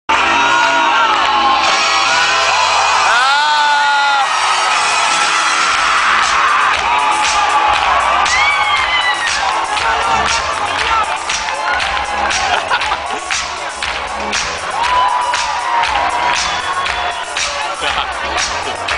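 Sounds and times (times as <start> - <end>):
crowd screaming and whooping: 0.1 - 18.9
live concert music through pa: 0.1 - 18.9.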